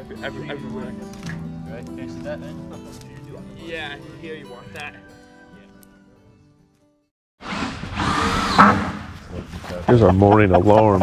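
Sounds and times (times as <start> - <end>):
faint background music: 0.0 - 6.7.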